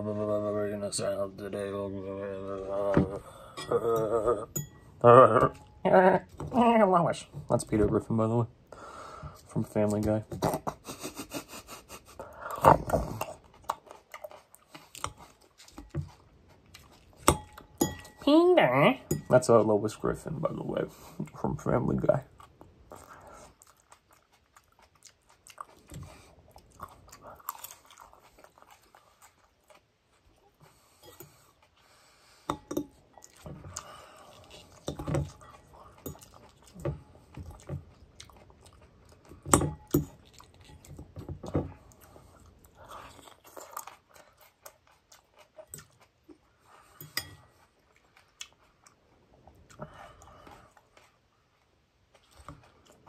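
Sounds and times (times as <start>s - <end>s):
person chewing salad: 9.1s - 18.2s, 20.3s - 53.0s
faint chewing clicks: 22.1s - 30.6s.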